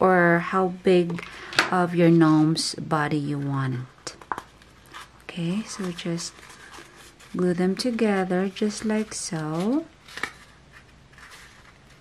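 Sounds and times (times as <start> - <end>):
faint rustling of card: 3.2 - 12.0
card crackling: 4.1 - 12.0.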